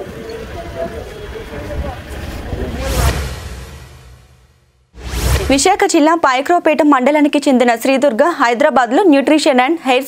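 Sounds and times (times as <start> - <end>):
people talking: 0.0 - 3.2, 5.4 - 10.0
low traffic rumble: 0.0 - 6.2
transition whoosh: 1.9 - 6.1.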